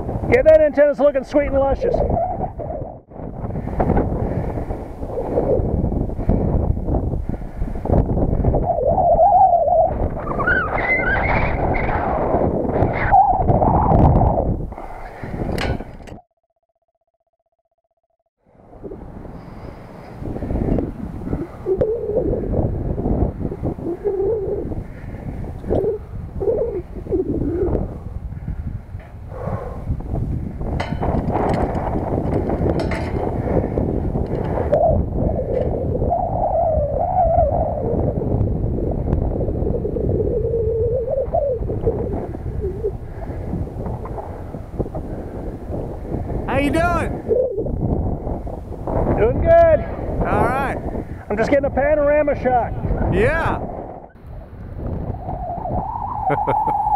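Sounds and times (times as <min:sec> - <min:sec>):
wind buffeting microphone: 0:00.0 - 0:16.2, 0:18.5 - 0:56.9
metallic knocks: 0:15.5 - 0:16.2, 0:30.7 - 0:33.4.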